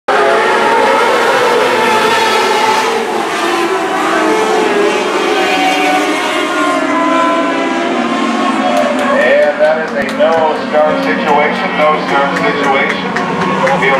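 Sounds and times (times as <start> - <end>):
race car engines: 0.1 - 13.9.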